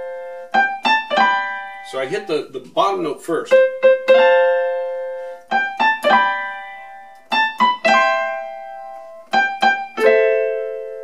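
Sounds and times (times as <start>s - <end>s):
keyboard piano chords: 0.0s - 11.0s.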